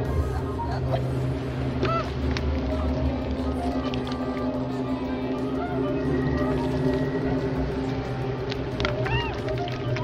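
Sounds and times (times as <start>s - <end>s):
low droning horror score: 0.0s - 10.0s.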